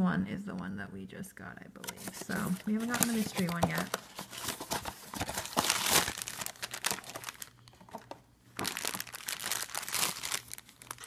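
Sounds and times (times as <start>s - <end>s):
plastic bag crinkling: 1.9s - 11.0s.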